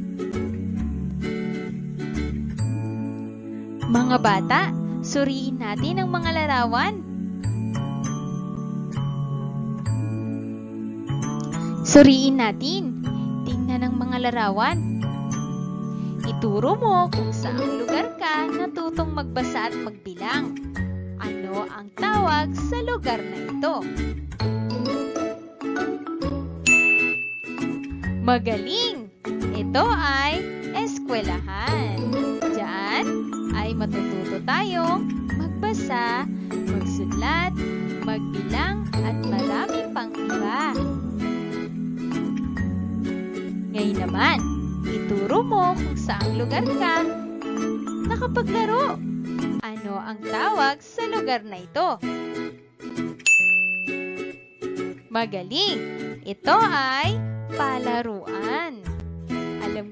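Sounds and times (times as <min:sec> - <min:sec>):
light background music: 0:00.0 - 0:59.9
bright ding sound effect: 0:26.6 - 0:28.2, 0:53.2 - 0:54.8.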